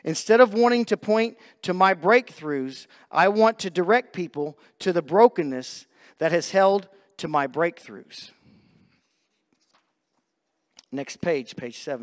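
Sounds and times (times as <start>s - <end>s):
man speaking: 0.0s - 8.4s, 10.8s - 12.0s.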